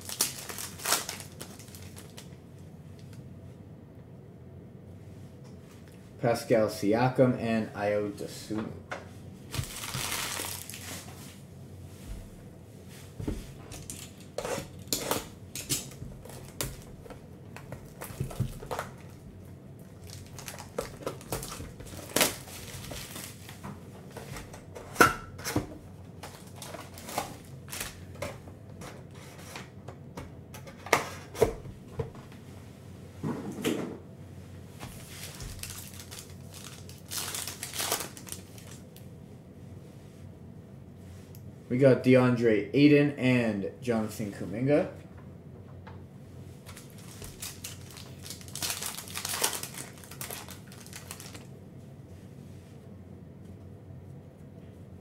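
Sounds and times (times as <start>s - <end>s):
foil pack tearing: 0.0s - 2.3s, 9.5s - 11.1s, 17.8s - 19.2s, 20.0s - 23.6s, 26.3s - 28.0s, 35.0s - 38.8s, 46.6s - 51.5s
cardboard and wrapping crinkles: 0.0s - 2.4s, 9.5s - 11.4s, 13.8s - 19.2s, 19.9s - 23.6s, 26.2s - 28.2s, 34.8s - 38.8s, 46.6s - 51.5s.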